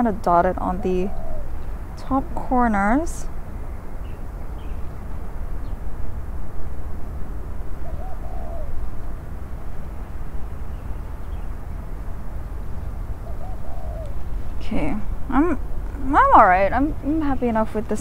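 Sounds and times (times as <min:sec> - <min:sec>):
faint wavering bird calls: 0:00.0 - 0:05.9, 0:07.7 - 0:18.0
low outdoor rumble: 0:00.0 - 0:18.0.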